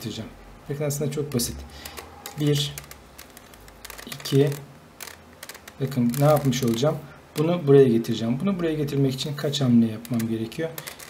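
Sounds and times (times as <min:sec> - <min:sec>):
puzzle cube layers clicking: 0:01.8 - 0:07.6, 0:10.0 - 0:11.0.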